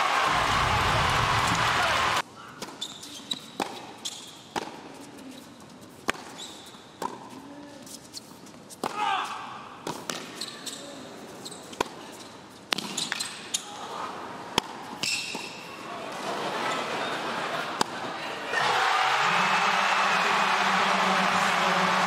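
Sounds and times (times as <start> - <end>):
tennis ball bouncing on hard court: 4.5 - 4.8.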